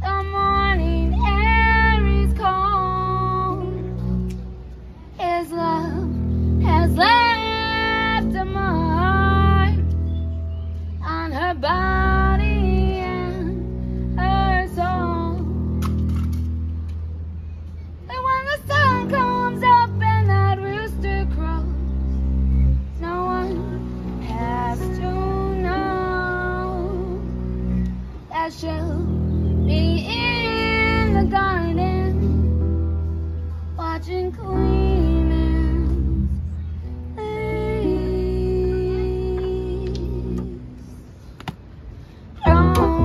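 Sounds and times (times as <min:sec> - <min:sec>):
woman singing: 0:00.0 - 0:03.9, 0:05.2 - 0:09.9, 0:11.0 - 0:15.6, 0:18.1 - 0:21.8, 0:23.0 - 0:27.3, 0:28.3 - 0:32.4, 0:33.8 - 0:36.5, 0:37.1 - 0:40.9, 0:42.4 - 0:43.0
upright bass: 0:00.0 - 0:18.0, 0:18.6 - 0:43.0
held melody notes: 0:42.4 - 0:43.0.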